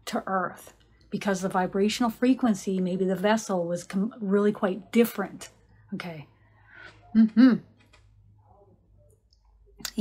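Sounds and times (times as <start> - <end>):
woman speaking: 0.0 - 6.4.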